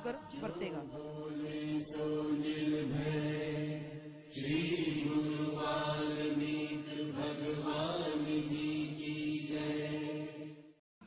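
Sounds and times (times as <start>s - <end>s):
person chanting: 0.0s - 10.4s.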